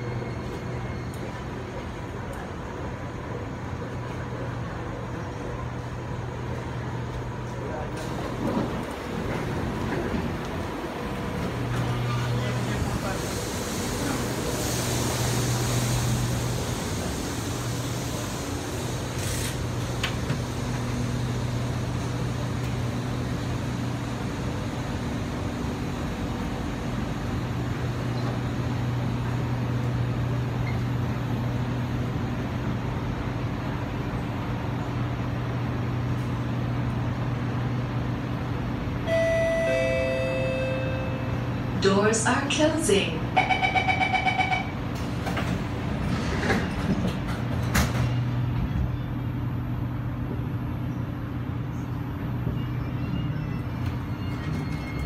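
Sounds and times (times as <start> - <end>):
low hum of train equipment: 0.0 - 55.0
station and passenger ambience: 0.0 - 55.0.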